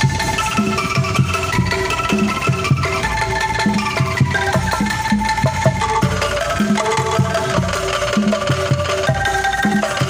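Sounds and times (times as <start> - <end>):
bamboo xylophone notes: 0.0 - 10.0
low bamboo strikes: 0.0 - 10.0.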